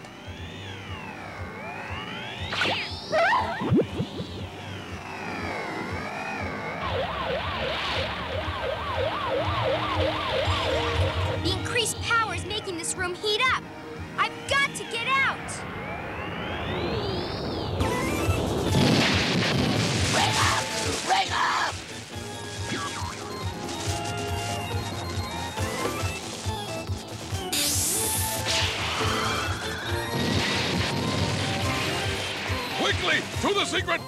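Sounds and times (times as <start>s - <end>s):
background music: 0.0s - 17.1s, 17.8s - 34.0s
cartoon whistle rising and falling: 1.7s - 4.3s
cartoon crashes and bangs: 18.7s - 21.2s.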